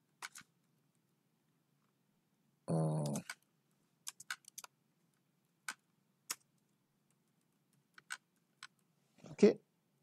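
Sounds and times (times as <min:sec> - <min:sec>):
keyboard keys clicking: 0:00.2 - 0:00.4, 0:03.0 - 0:04.7, 0:07.7 - 0:08.8.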